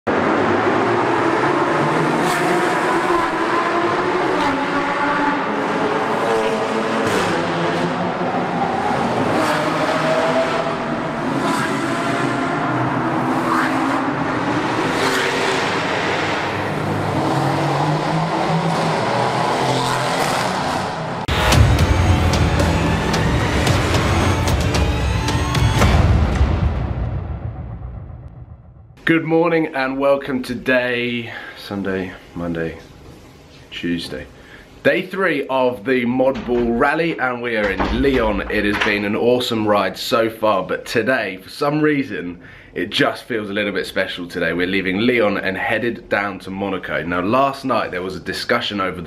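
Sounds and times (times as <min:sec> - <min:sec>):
car engines revving in tunnel: 0:00.1 - 0:24.9
loud music with deep bass: 0:21.3 - 0:27.6.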